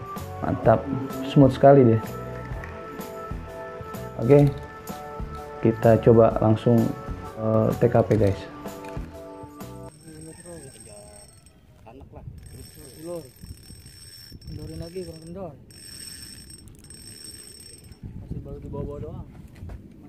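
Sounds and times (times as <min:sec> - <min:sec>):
thin high-pitched whine: 0:12.4 - 0:18.0.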